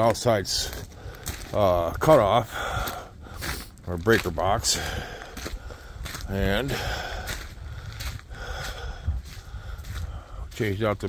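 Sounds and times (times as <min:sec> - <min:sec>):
footsteps on mulch and grass: 0:00.0 - 0:11.0.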